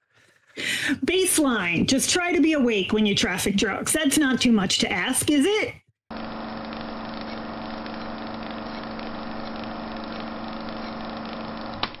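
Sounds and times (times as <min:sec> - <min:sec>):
mechanical hum: 0:06.1 - 0:11.9.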